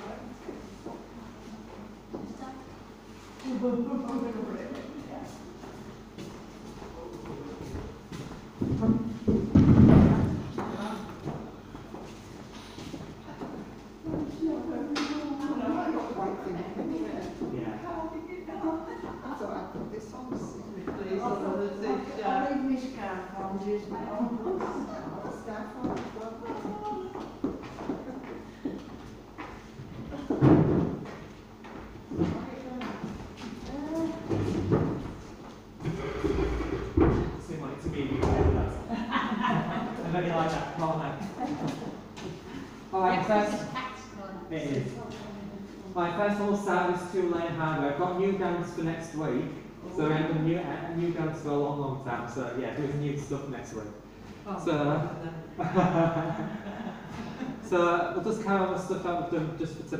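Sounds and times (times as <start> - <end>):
indistinct voices: 35.8 - 38.9.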